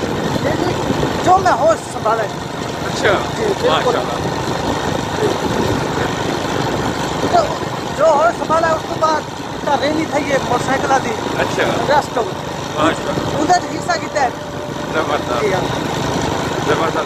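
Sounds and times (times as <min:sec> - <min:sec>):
wind rushing over microphone: 0:00.0 - 0:01.8, 0:02.7 - 0:07.9
motorcycle engine running: 0:00.0 - 0:17.0
man talking: 0:00.4 - 0:04.3, 0:07.3 - 0:15.7, 0:16.6 - 0:17.0.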